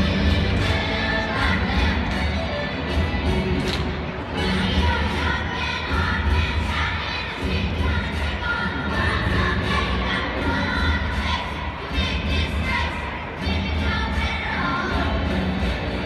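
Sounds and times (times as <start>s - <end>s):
children's chorus singing: 0.0s - 16.0s
crowd noise: 0.0s - 16.0s.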